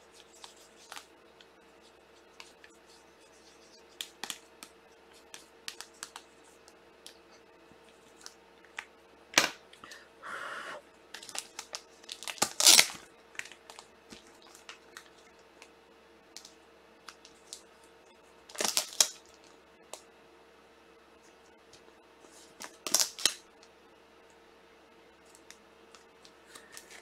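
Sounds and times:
cards clicking and tapping: 0:03.9 - 0:06.3
foil wrapper tearing: 0:11.2 - 0:13.8, 0:18.5 - 0:19.2, 0:22.6 - 0:23.4
wrapper crinkling: 0:11.2 - 0:15.2, 0:18.5 - 0:19.4.

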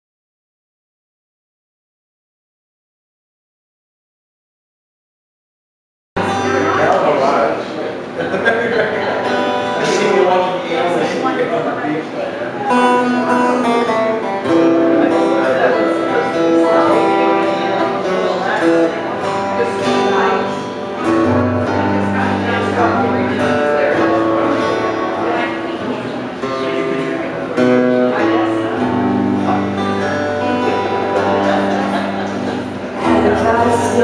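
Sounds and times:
acoustic guitar strumming: 0:06.2 - 0:34.0.

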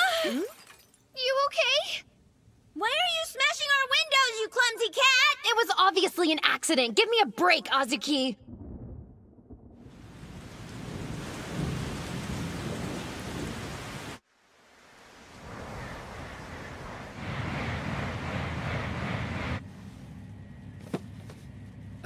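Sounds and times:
wind: 0:00.0 - 0:22.0
thunder rumble: 0:08.4 - 0:14.2, 0:14.8 - 0:22.0
heavy rain: 0:09.8 - 0:19.6.

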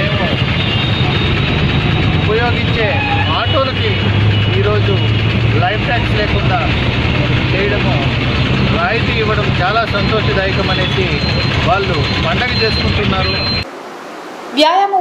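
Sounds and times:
low engine hum: 0:00.0 - 0:13.6
loud street traffic: 0:00.0 - 0:14.1
man talking: 0:02.2 - 0:06.8, 0:07.4 - 0:13.6.

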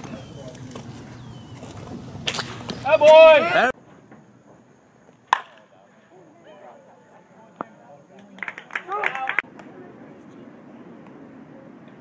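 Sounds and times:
baseball bat hitting ball: 0:05.3 - 0:05.7.

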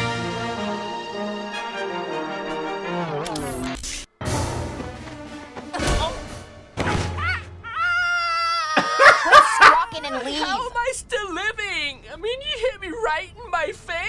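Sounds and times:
orchestral film music: 0:00.0 - 0:07.6
loud laughter: 0:07.3 - 0:10.4.

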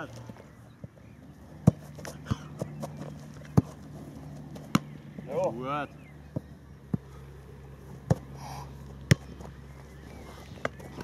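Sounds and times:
steady low hum: 0:00.0 - 0:11.0
football being kicked: 0:01.6 - 0:03.8, 0:04.6 - 0:05.0, 0:09.0 - 0:09.6.

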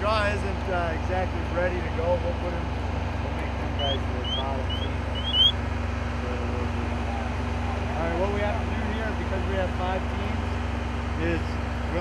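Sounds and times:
engine idling hum: 0:00.0 - 0:12.0
high rising chirps: 0:03.8 - 0:05.6.

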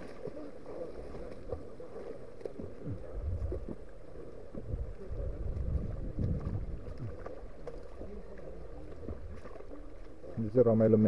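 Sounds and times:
shallow river flowing: 0:00.0 - 0:11.0
wind buffeting microphone: 0:04.6 - 0:07.2.

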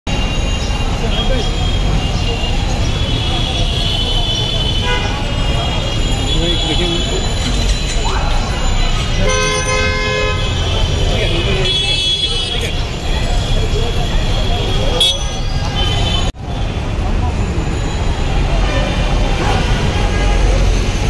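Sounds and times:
traffic: 0:00.0 - 0:21.0
people talking: 0:00.4 - 0:21.0
vehicle horn honking: 0:03.1 - 0:07.2, 0:09.1 - 0:12.8, 0:14.6 - 0:16.3.

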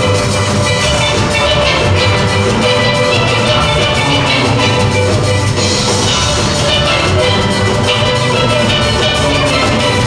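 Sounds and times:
steel band playing: 0:00.0 - 0:10.0.

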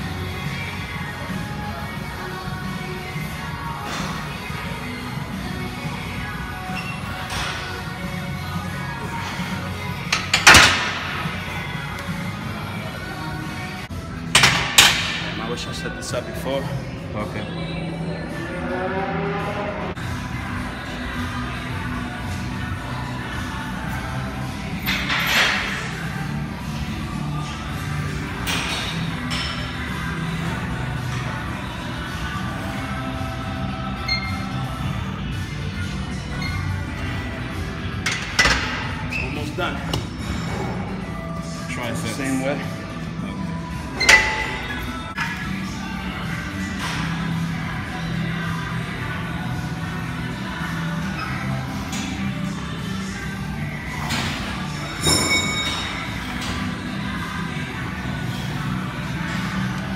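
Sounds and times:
background music: 0:00.0 - 0:59.9.

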